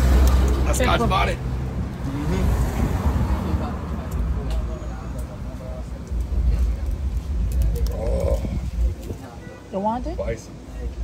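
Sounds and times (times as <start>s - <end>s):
low rumble of road traffic: 0.0s - 11.0s.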